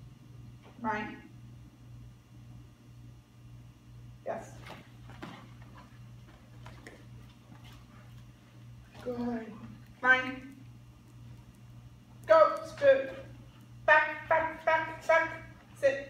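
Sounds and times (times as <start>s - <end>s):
steady low hum: 0.0s - 16.0s
dog scuffling: 4.6s - 10.0s.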